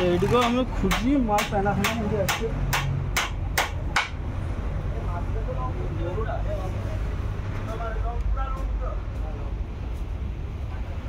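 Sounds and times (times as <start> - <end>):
hammer knocking on wood: 0.0 - 4.2.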